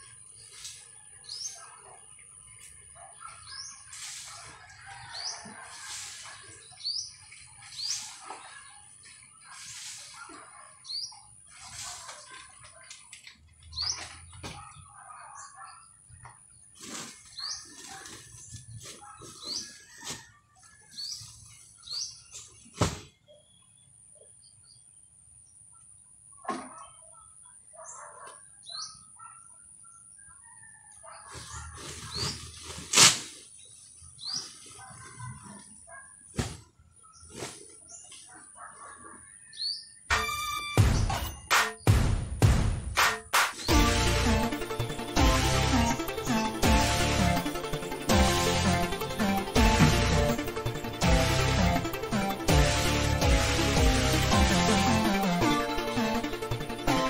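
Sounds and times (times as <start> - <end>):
rustling and scraping: 11.4 - 14.7, 16.6 - 23.2, 31.2 - 38.3.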